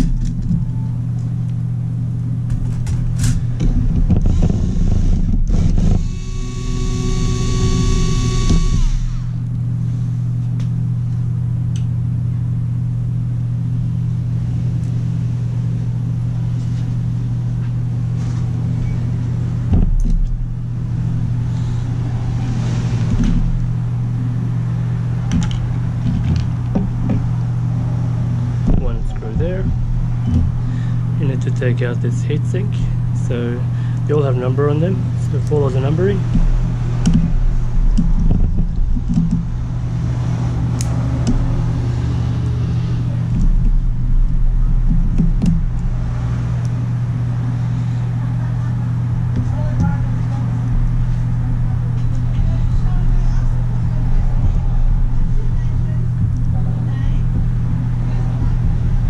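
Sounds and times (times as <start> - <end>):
steady low hum: 0.0 - 59.0
electric screwdriver whining: 4.2 - 9.4.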